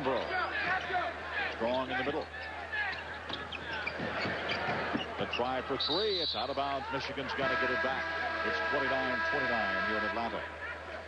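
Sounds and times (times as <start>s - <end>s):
arena crowd noise: 0.0s - 11.0s
shoe squeaks on court: 2.4s - 5.5s.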